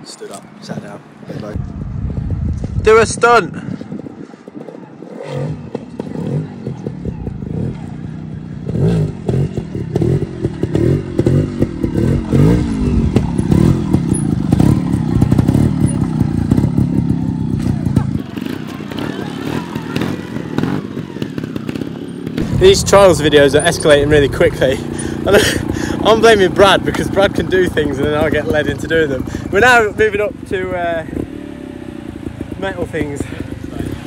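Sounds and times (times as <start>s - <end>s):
motorcycle revving: 0.7s - 34.0s
motorcycle clatter: 4.5s - 34.0s.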